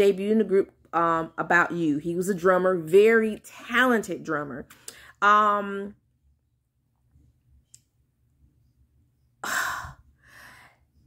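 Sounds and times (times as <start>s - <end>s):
woman sighing: 9.4s - 10.6s.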